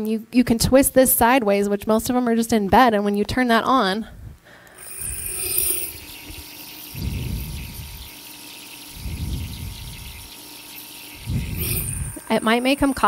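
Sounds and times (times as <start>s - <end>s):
nebulizer hissing: 4.5s - 13.0s.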